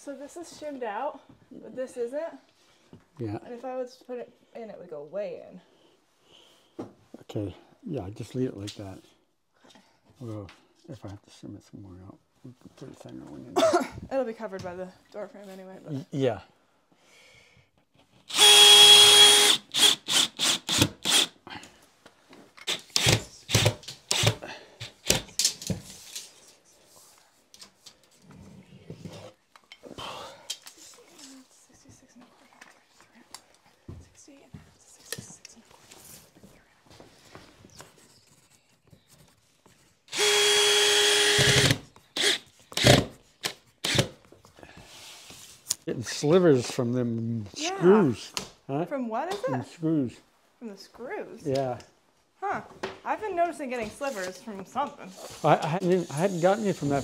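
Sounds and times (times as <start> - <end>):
power drill whine: 18.3 - 21.3, 40.1 - 43.1.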